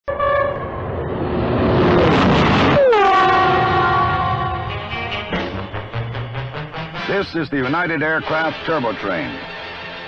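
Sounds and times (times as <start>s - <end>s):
train horn blast: 0.1s - 0.9s, 2.5s - 9.8s
train passing at speed: 0.1s - 7.0s.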